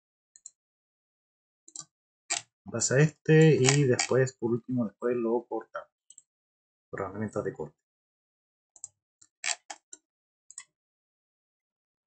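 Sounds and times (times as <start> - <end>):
mouse and keyboard clicks: 3.6 - 4.2, 8.8 - 10.7.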